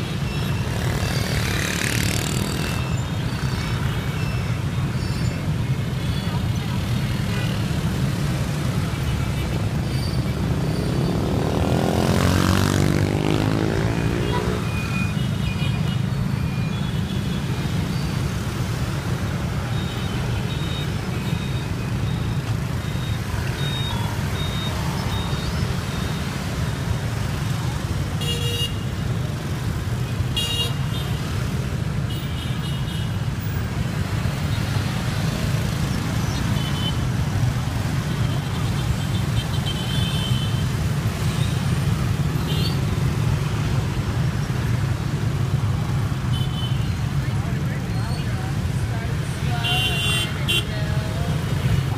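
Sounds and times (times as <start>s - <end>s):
motorbike and scooter traffic: 0.0s - 51.9s.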